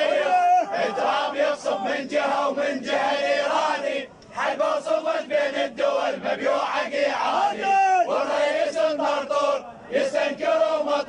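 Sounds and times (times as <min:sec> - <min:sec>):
men chanting: 0:00.0 - 0:11.0.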